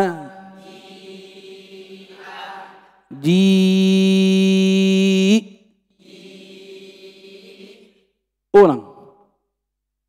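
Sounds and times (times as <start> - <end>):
man chanting long vowel: 0.0 - 0.7, 3.1 - 5.5.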